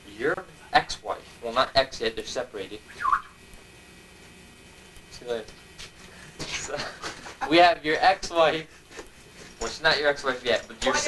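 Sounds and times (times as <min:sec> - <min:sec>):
tape hiss and whine: 0:00.0 - 0:11.0.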